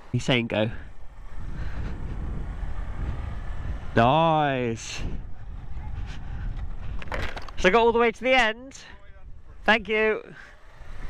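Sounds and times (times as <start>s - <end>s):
motorcycle engine pulling away: 10.5s - 11.0s.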